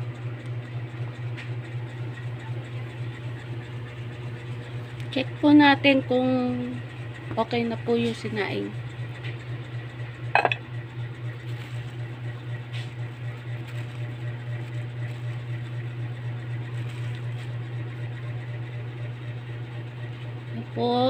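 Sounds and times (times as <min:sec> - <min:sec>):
steady low hum: 0:00.0 - 0:21.0
metal pot lid clanking: 0:10.4 - 0:10.6
plastic sheet rustling: 0:11.4 - 0:12.4, 0:13.3 - 0:15.7, 0:16.6 - 0:17.5.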